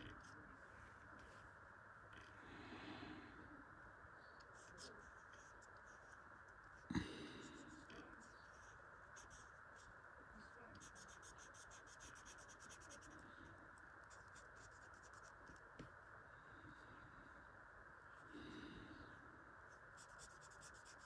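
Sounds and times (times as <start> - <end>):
marker scratching on paper: 4.4 - 6.8, 7.5 - 9.9, 10.7 - 13.2, 14.0 - 15.9, 19.9 - 21.0.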